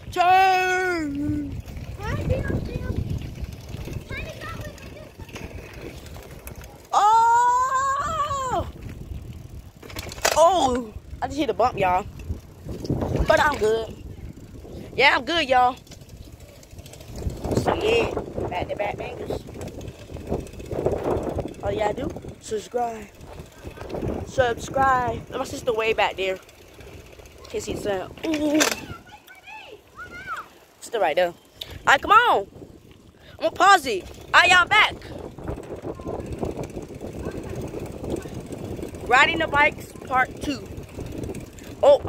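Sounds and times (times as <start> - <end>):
wind rumble on microphone: 0.0 - 26.2, 31.7 - 42.0
bicycle tyres rolling: 0.0 - 42.0.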